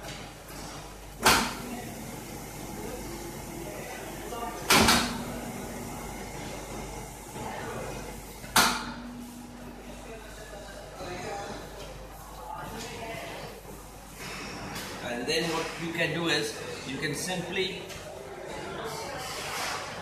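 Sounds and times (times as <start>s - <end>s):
dough sheeter humming: 0.0s - 18.9s
sharp machine clunks: 4.7s - 5.3s, 8.5s - 9.6s.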